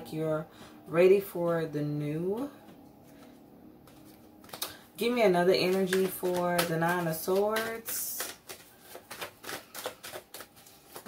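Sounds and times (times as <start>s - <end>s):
cards being shuffled: 3.2s - 11.0s.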